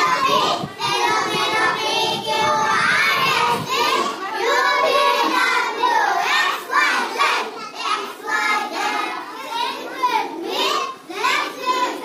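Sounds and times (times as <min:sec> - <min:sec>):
children chanting a rhyme: 0:00.0 - 0:12.0.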